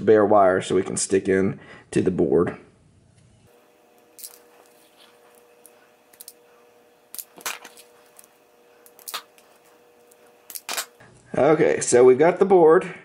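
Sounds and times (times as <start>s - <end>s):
faint steady hum: 0.0s - 13.0s
wire strippers clicking and snapping: 5.4s - 6.4s, 7.1s - 11.0s.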